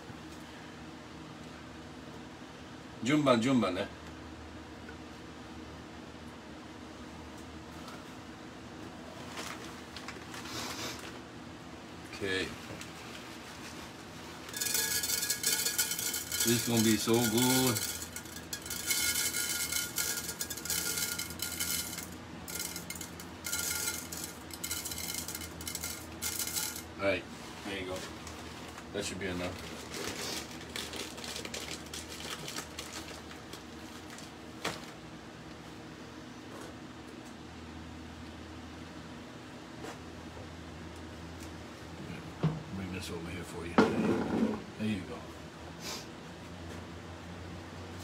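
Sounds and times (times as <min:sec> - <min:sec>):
steady low hum: 0:00.0 - 0:32.2
plastic bag rustling and crinkling: 0:09.2 - 0:11.2, 0:27.4 - 0:35.0
kitchen background: 0:13.6 - 0:27.0
bag contents rattling: 0:14.5 - 0:26.8, 0:29.4 - 0:34.3
oil crackling in frying pan: 0:14.5 - 0:26.8.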